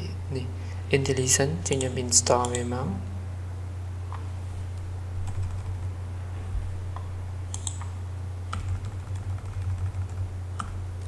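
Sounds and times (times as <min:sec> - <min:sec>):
steady low hum: 0:00.0 - 0:11.0
keyboard keys clicking: 0:08.5 - 0:10.8.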